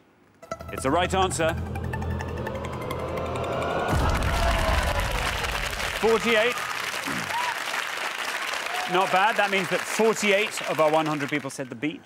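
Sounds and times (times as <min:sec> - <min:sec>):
falling electronic tone with ticking: 0:00.4 - 0:05.9
low boom: 0:00.7 - 0:06.3
audience applauding: 0:03.9 - 0:12.0.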